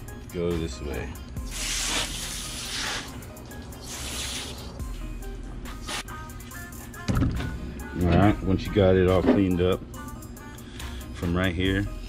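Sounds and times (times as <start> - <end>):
background music: 0.0 - 12.0
hose nozzle spraying water: 1.5 - 3.1, 3.8 - 4.7.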